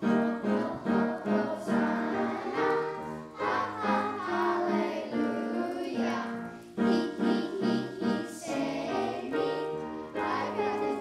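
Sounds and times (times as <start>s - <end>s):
children's choir singing: 0.0s - 11.0s.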